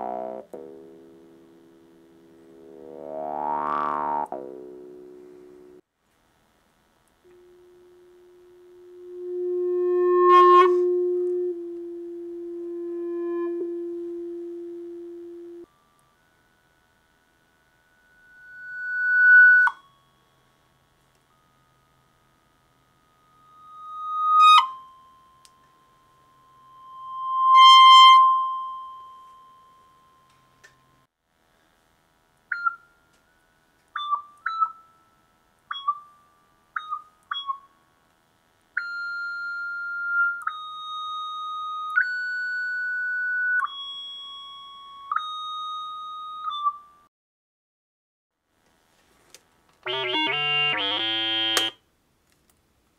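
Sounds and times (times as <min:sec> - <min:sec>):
whistle-like synthesizer tones: 0:49.9 - 0:51.7.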